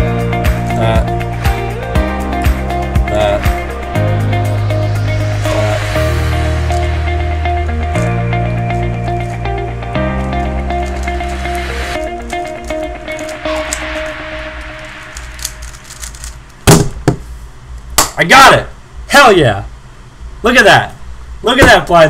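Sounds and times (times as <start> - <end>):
background music with bass line: 0.0 - 15.4.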